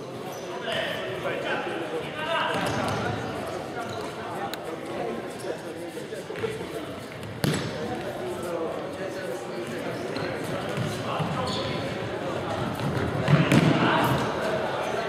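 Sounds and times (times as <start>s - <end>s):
voices echoing in a hall: 0.0s - 15.0s.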